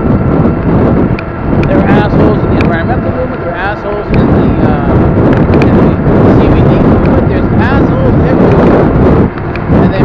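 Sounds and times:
wind buffeting microphone: 0.0 - 10.0
man's voice: 1.7 - 8.8, 9.8 - 10.0.

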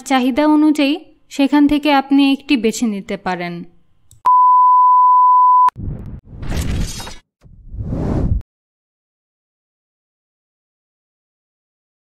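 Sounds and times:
steady electronic beep tone: 4.3 - 5.8
noisy whooshing transition effect: 7.4 - 8.4.

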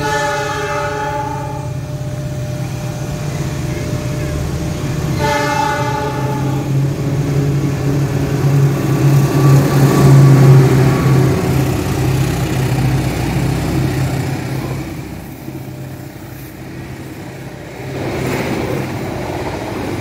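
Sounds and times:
locomotive horn: 0.0 - 1.9, 3.8 - 6.8
diesel engine droning: 0.0 - 17.6
train coaches rolling past: 0.0 - 20.0.

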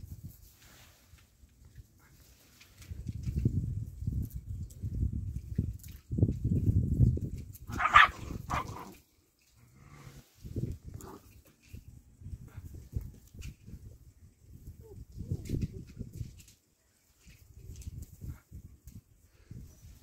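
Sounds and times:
high puppy yelp: 7.7 - 8.8.

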